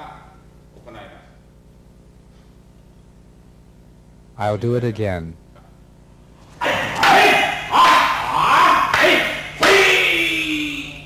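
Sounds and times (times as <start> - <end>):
men shouting: 6.6 - 11.0.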